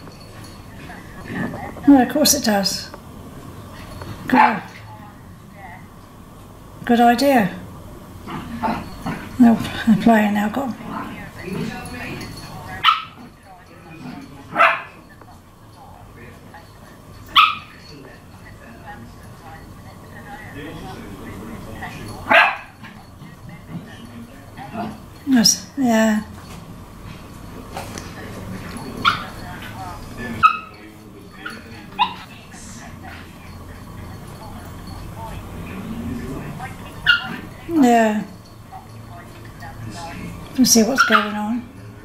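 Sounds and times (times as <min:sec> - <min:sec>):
small dogs barking: 0:04.2 - 0:04.9, 0:10.8 - 0:13.4, 0:14.0 - 0:15.1, 0:17.2 - 0:17.9, 0:21.8 - 0:23.4, 0:28.0 - 0:37.7, 0:40.3 - 0:41.8
dog barking: 0:04.3 - 0:04.8, 0:12.8 - 0:13.3, 0:14.5 - 0:15.0, 0:17.3 - 0:17.8, 0:22.2 - 0:23.0, 0:29.0 - 0:29.8, 0:30.4 - 0:30.8, 0:31.4 - 0:32.3, 0:37.0 - 0:37.5, 0:41.0 - 0:41.5.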